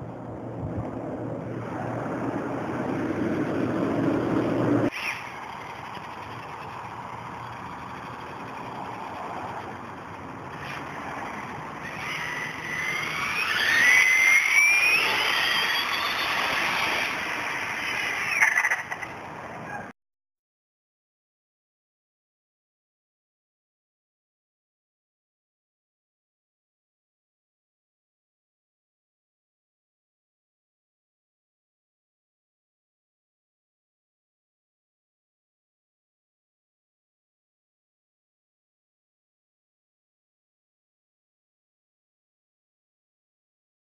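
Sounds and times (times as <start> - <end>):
rush of noise: 0.0 - 19.9
electric motor whine: 1.5 - 18.7.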